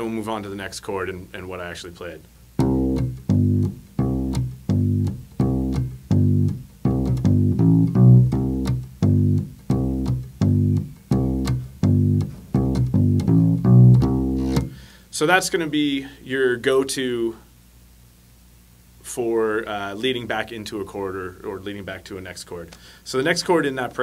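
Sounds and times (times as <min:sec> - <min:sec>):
electric bass guitar line: 0:02.6 - 0:14.9.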